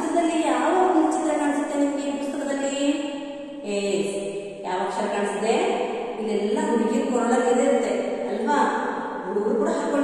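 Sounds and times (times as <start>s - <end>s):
woman chanting: 0.0s - 10.0s.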